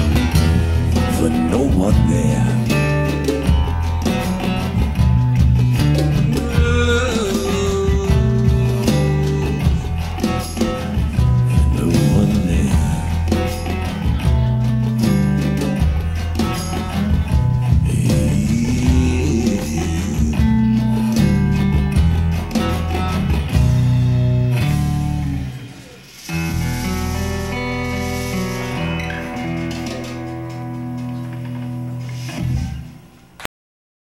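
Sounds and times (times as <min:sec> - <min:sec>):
acoustic guitar playing slow blues: 0:00.0 - 0:33.4.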